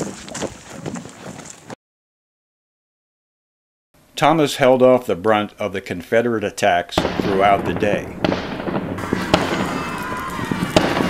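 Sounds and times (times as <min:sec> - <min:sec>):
musket shots: 0:07.0 - 0:11.0.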